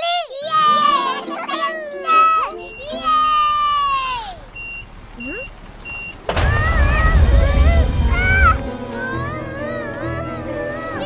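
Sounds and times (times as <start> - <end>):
children crying out: 0.0 - 4.5, 6.3 - 11.0
short high beeps: 4.6 - 6.2
loud low rumble: 5.8 - 9.6
sudden thud: 6.2 - 8.8.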